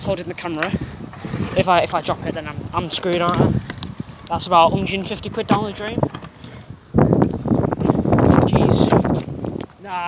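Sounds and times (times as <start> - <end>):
scooter wheels rattling rumble: 0.0 - 9.9.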